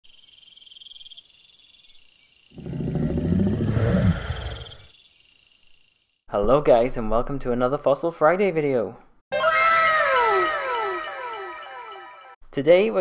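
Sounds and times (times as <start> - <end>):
insects chirping: 0.0 - 6.3
deep dinosaur roar: 2.6 - 4.9.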